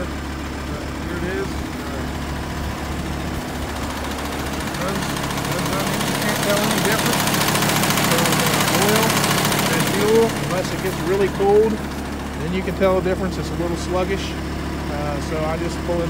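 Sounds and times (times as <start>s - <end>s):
diesel engine idling: 0.0s - 16.0s.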